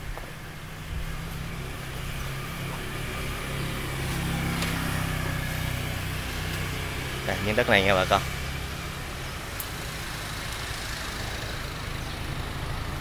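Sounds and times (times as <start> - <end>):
road and wind noise: 0.0 - 13.0
motorbike engine running: 0.2 - 13.0.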